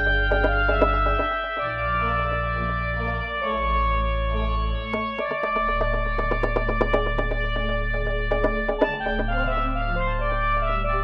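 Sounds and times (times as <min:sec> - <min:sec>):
deep pedal bass notes: 0:00.0 - 0:11.0
organ and synthesizer chords: 0:00.0 - 0:11.0
quick percussive ticks: 0:05.0 - 0:09.2.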